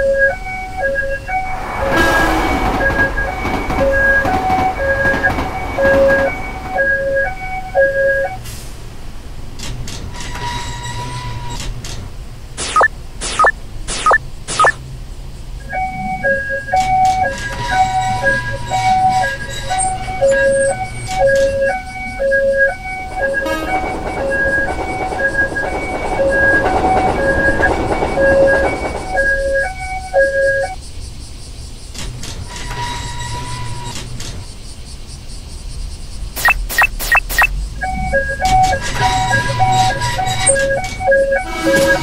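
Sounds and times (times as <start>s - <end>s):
railroad crossing alarm chime: 0.0s - 8.4s, 15.6s - 30.8s, 36.4s - 42.0s
sharp clicks: 12.6s - 14.8s, 36.4s - 37.5s.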